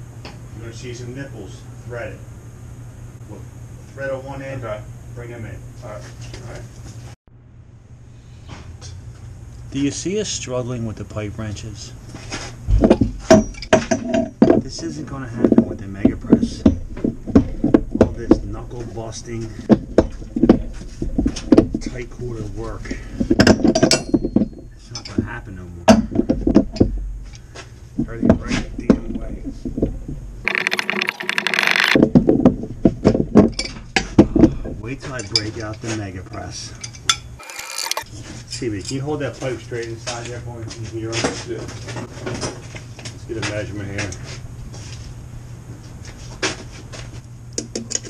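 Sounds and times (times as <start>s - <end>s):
pipe wrenches clinking on steel pipe: 23.4s - 25.2s
low voices: 28.0s - 31.1s.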